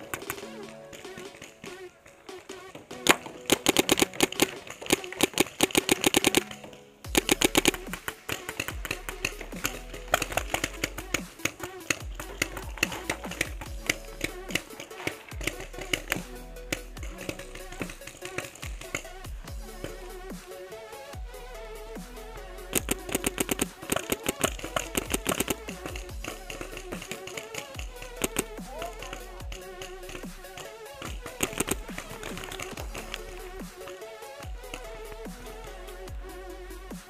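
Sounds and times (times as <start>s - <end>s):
dubstep music: 0.0s - 37.0s.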